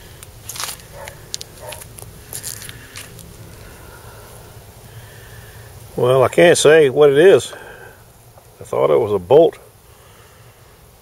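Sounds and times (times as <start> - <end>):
crackling handling noises: 0.0 - 3.7.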